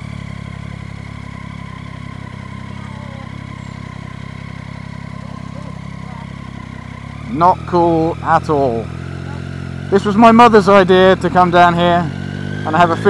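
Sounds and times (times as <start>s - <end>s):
motorcycle engine running low: 0.0s - 13.0s.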